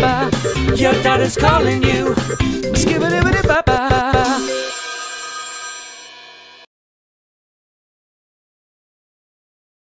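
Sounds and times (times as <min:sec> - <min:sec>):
novelty musical ringtone: 0:00.2 - 0:06.7.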